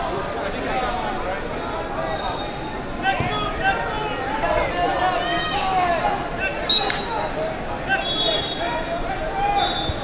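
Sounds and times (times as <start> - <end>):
coaches and spectators shouting: 0.2 - 10.0
referee whistle blasts: 6.7 - 7.2, 9.6 - 10.0.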